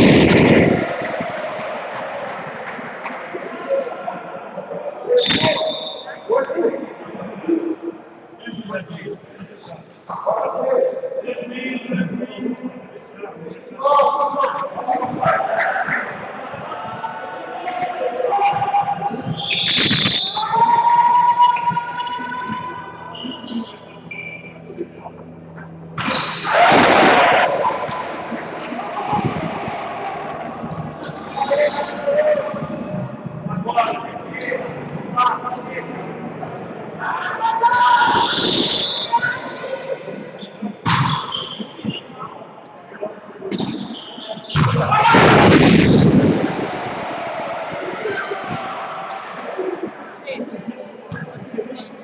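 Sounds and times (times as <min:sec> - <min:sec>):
crowd and player noise: 0:00.0 - 0:52.0
gym hall noise: 0:00.0 - 0:52.0
loud noisy burst: 0:26.4 - 0:30.8.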